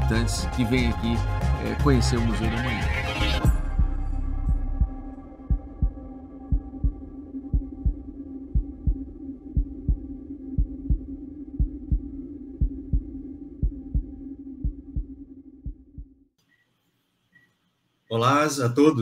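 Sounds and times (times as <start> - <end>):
steady humming drone: 3.4 - 16.0
heartbeat-like double thump: 3.5 - 16.2.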